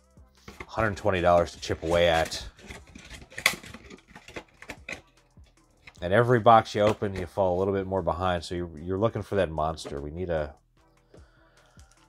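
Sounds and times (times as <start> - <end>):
plastic shrink wrap crinkling: 0.6 - 5.0.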